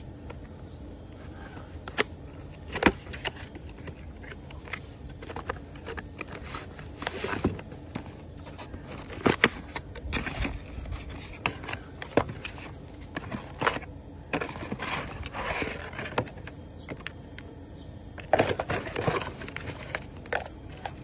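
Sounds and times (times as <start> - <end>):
cardboard scraping and rustling: 1.2 - 17.1, 18.2 - 21.0.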